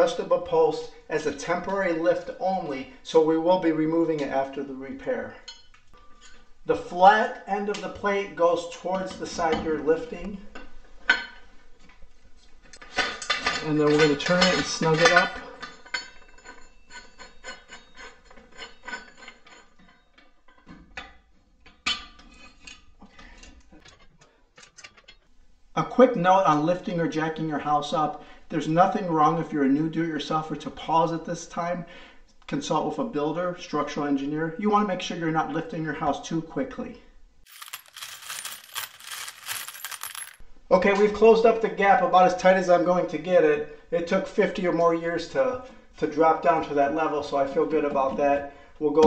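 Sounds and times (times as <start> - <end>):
bright metallic clinks and jingles: 37.5 - 40.4.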